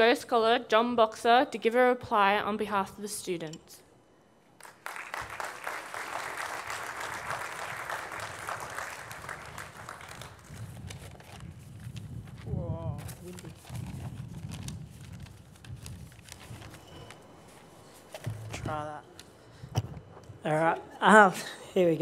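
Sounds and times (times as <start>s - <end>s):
audience applause: 4.6s - 10.6s
microphone bumps and knocks: 18.2s - 18.8s
person speaking: 18.2s - 19.4s.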